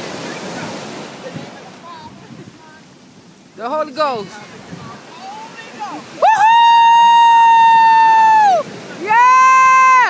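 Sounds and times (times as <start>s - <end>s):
surf washing: 0.0s - 10.0s.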